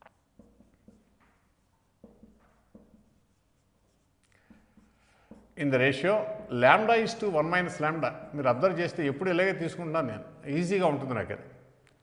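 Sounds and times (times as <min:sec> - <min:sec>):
marker writing on a board: 0:00.0 - 0:05.6.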